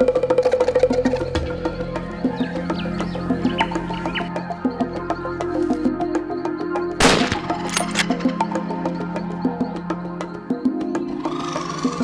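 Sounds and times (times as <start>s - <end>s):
background music: 0.0s - 12.0s
rifle shot: 7.0s - 8.1s.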